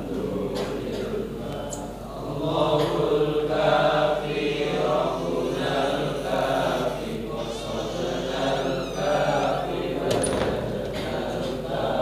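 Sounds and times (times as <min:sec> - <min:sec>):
congregation chanting in unison: 0:00.0 - 0:12.0.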